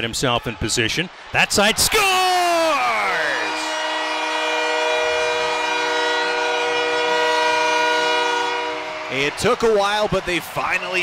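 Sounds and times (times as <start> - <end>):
crowd cheering: 0.0 - 11.0
person shouting: 1.8 - 3.7
goal horn blast: 2.7 - 10.0.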